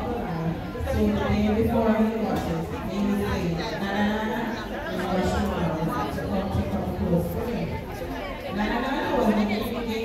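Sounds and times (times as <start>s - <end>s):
voices chattering: 0.0s - 10.0s.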